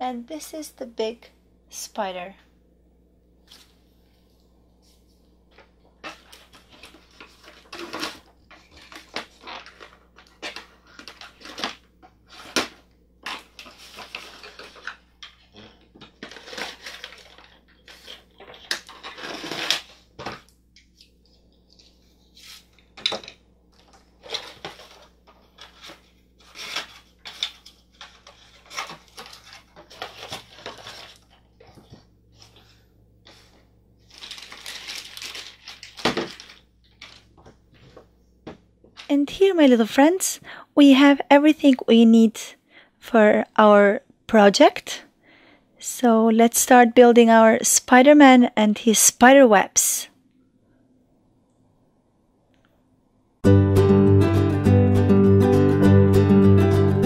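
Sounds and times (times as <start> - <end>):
rustling of packaging: 4.9 - 38.2.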